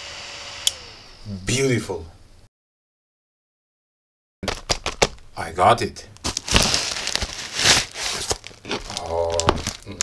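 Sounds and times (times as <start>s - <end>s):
plastic mailer crinkling: 4.4s - 5.3s, 6.2s - 10.0s.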